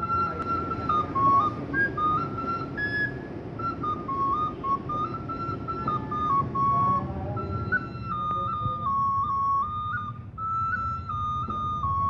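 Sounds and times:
bamboo flute melody: 0.0 - 12.0.

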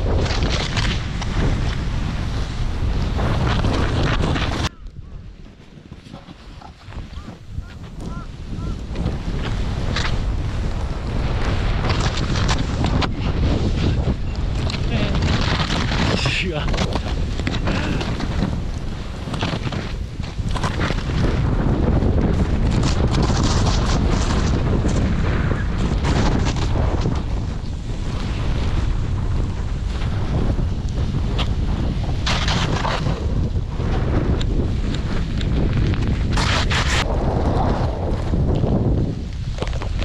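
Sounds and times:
snowboard scraping on crusty snow: 0.0 - 40.0
wind buffeting microphone: 0.0 - 40.0.

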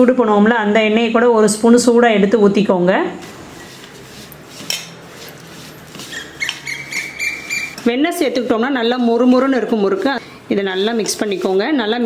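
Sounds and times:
hand rubbing butter into flour: 3.2 - 9.5, 10.6 - 12.0.

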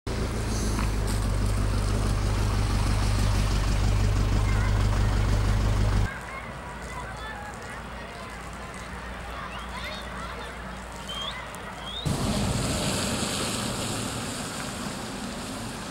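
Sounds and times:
loud low rumble: 0.1 - 6.1.

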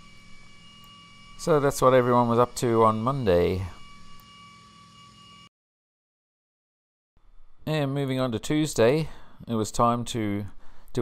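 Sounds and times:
steady high-pitched hum: 0.0 - 5.5.

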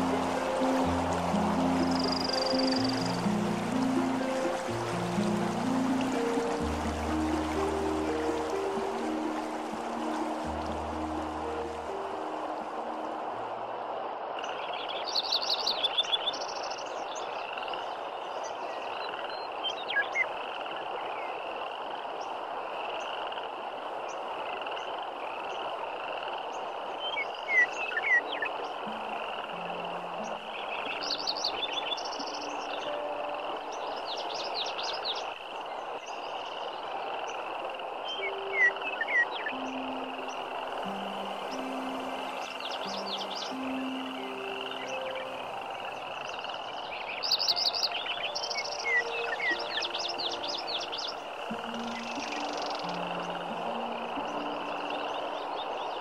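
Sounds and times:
river running over rocks: 0.0 - 56.0.

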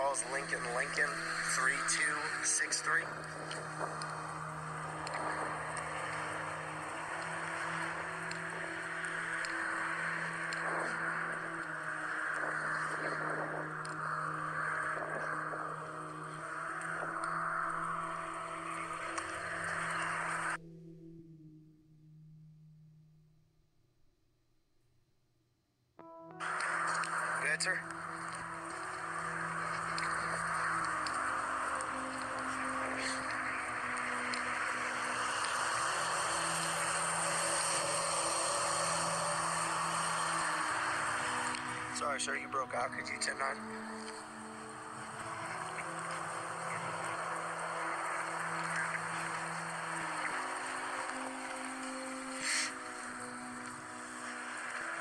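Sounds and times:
low steady music drone: 0.0 - 23.7, 26.0 - 55.0.

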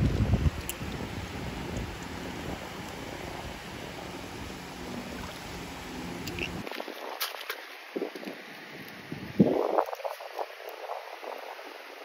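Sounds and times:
small waves washing shore: 0.0 - 12.0
wind buffeting microphone: 0.0 - 12.0.

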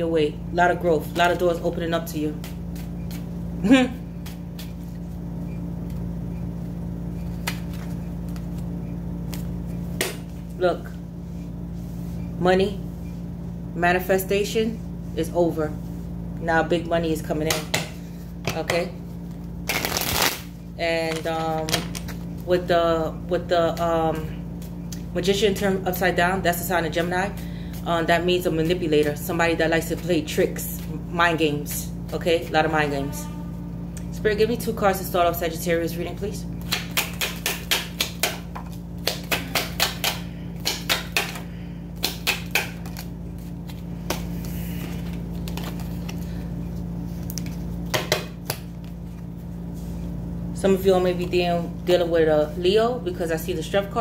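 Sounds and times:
cards being shuffled: 4.1 - 5.1, 7.1 - 10.4, 19.3 - 22.4, 42.0 - 46.4, 47.1 - 49.3.

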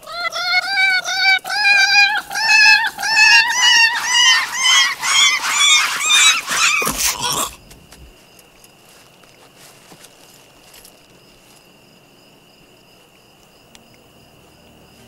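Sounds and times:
cat yowling: 0.0 - 7.9
heavy thud: 6.9 - 8.2.

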